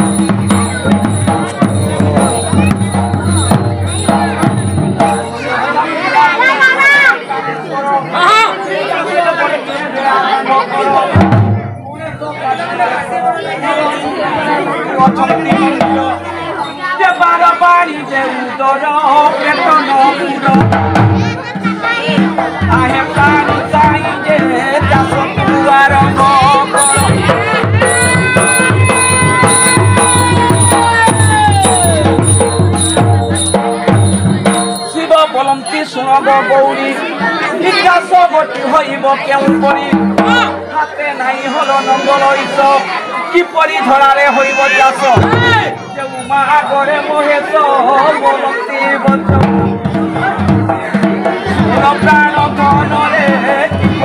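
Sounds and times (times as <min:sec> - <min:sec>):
drum beaten in quick rhythm: 0:00.0 - 0:06.9, 0:11.0 - 0:12.8, 0:14.9 - 0:17.4, 0:20.2 - 0:40.9, 0:45.0 - 0:47.5, 0:48.9 - 0:54.0
people chattering: 0:00.0 - 0:54.0
sustained melody: 0:26.6 - 0:36.3.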